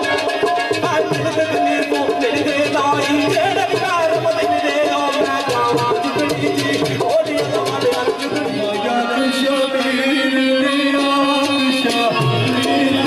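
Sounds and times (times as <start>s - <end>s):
steady percussion beat: 0.0s - 13.0s.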